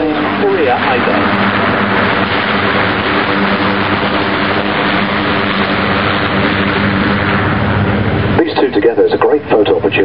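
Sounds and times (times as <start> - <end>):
propeller aircraft engines droning: 0.0 - 10.0.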